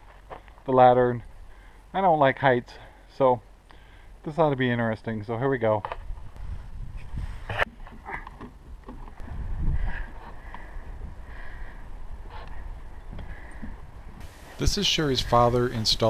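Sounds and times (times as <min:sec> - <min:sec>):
wind rumbling on microphone: 0:06.0 - 0:16.0.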